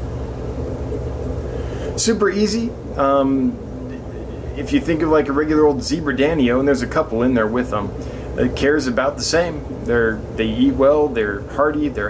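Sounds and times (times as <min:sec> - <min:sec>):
air pumps and filters humming: 0:00.0 - 0:12.0.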